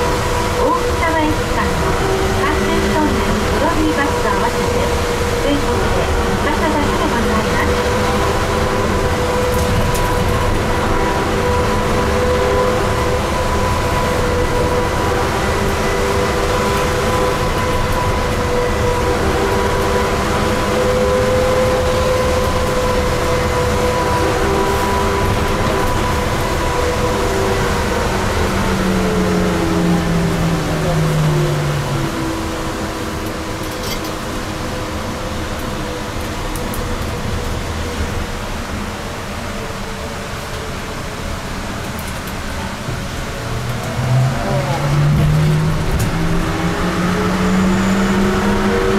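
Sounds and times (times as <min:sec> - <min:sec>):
trolleybus rumble and tyre noise: 0:00.0 - 0:48.9.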